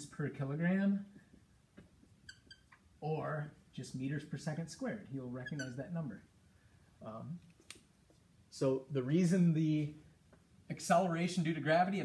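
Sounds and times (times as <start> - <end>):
marker squeaks: 2.1 - 2.9, 5.3 - 6.0.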